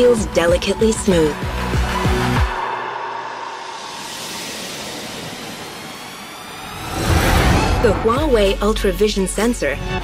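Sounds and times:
bass: 0:00.0 - 0:02.5, 0:07.2 - 0:10.0
airy whoosh sweep: 0:01.3 - 0:08.3
faint rising tones: 0:01.3 - 0:08.4.

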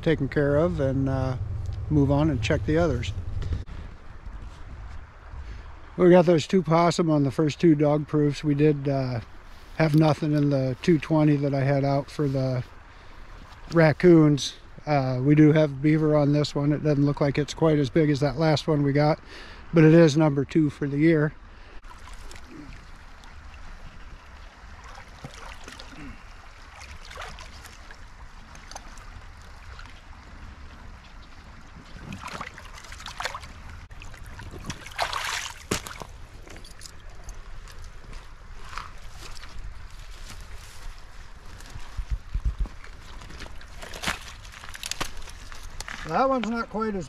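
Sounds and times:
water splashing: 0:21.8 - 0:42.0, 0:42.7 - 0:46.5.

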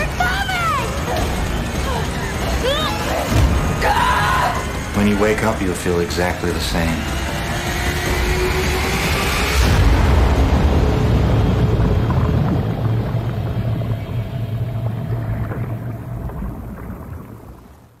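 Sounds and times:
deep rumbling drone: 0:00.0 - 0:18.0.

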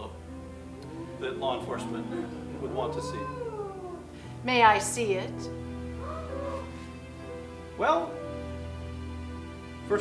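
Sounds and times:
soft sustained chords music: 0:00.0 - 0:10.0
man speaking: 0:01.1 - 0:03.6.

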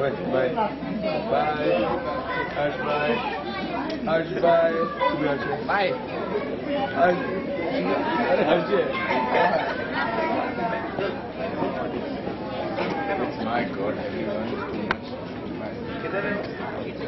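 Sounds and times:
crowd of students chattering: 0:00.0 - 0:17.0.

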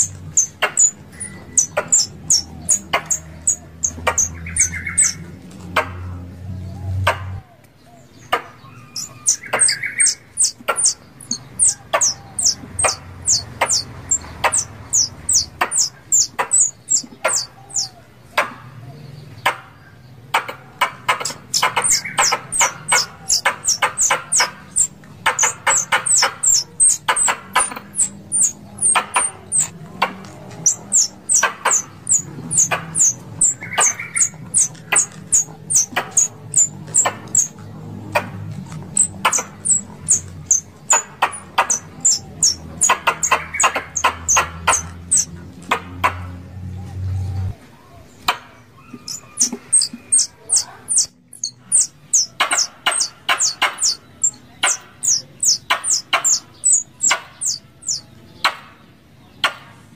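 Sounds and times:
squirrel call clicks and chips: 0:00.0 - 0:05.9, 0:08.3 - 0:18.6, 0:20.4 - 0:46.2, 0:48.2 - 0:58.1.

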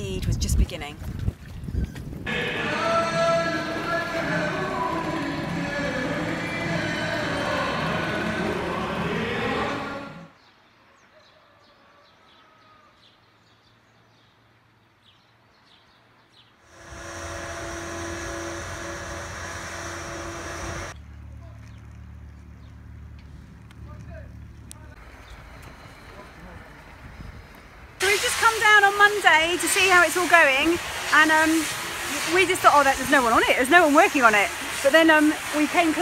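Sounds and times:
steady held tone: 0:16.7 - 0:21.0.

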